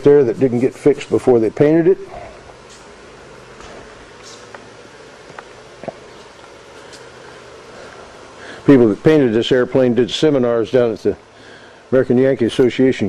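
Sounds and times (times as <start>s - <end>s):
low room noise: 0.0s - 13.0s.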